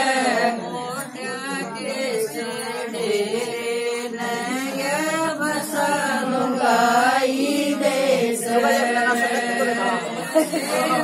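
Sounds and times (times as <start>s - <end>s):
women singing folk song: 0.0s - 11.0s.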